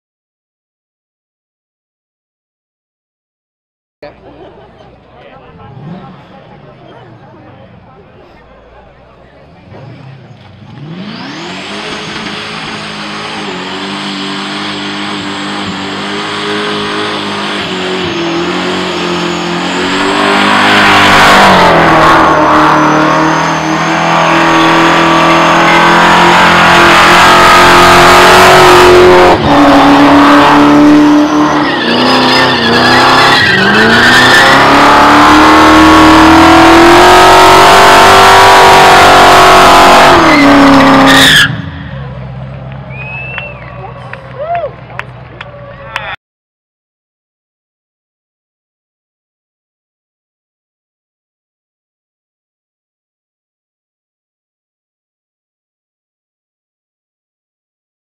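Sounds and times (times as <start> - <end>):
car engine revving: 4.2 - 44.3.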